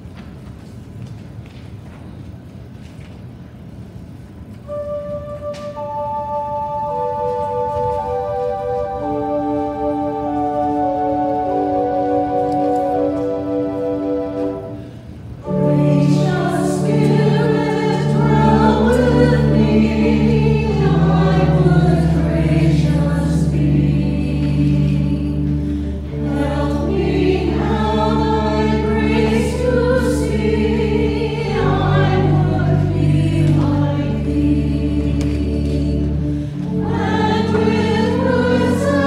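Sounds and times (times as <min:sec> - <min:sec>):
organ accompaniment: 0:04.7 - 0:39.0
choir singing in parts: 0:15.4 - 0:39.0.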